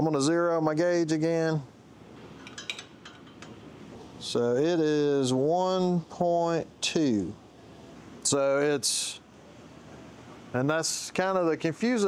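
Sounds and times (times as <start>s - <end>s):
faint room hiss: 0.0s - 12.0s
light metal clicks and clinks: 2.4s - 3.6s.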